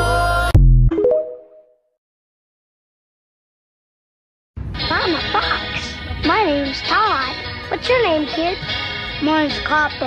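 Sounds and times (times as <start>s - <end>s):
background music: 4.6s - 10.0s.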